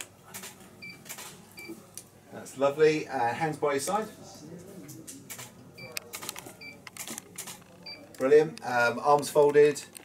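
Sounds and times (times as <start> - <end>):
camera focus beeps: 5.8 - 6.0.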